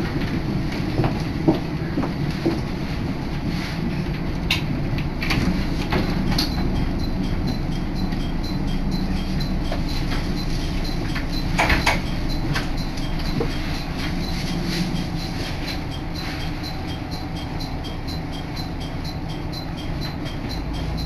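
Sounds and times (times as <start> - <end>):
railcar engine and wheels rumble: 0.0 - 21.0.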